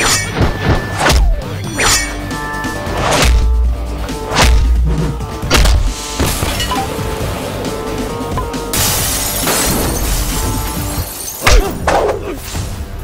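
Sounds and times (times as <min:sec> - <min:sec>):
film background score: 0:00.0 - 0:13.0.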